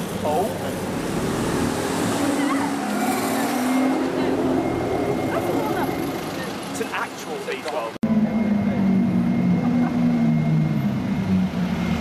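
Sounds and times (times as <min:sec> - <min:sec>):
street voices: 0:00.0 - 0:11.8
traffic noise: 0:00.0 - 0:12.0
car engine pulling away: 0:08.1 - 0:12.0.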